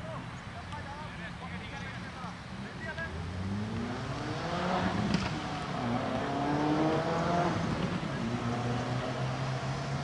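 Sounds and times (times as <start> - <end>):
vehicle engine accelerating: 2.6 - 10.0.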